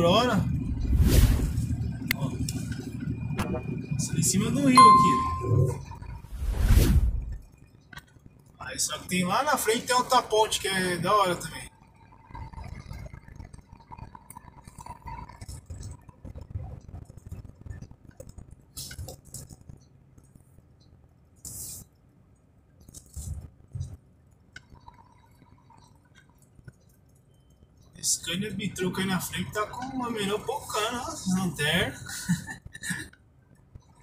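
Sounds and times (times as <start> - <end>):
truck engine and road rumble: 0.0 - 34.0.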